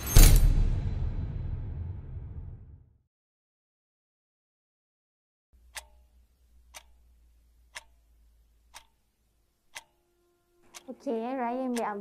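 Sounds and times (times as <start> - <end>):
clock ticking: 5.6 - 12.0.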